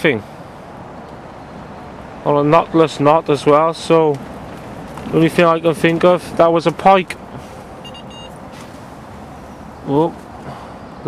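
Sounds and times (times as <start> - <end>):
bite alarm bleeps: 7.8 - 8.4.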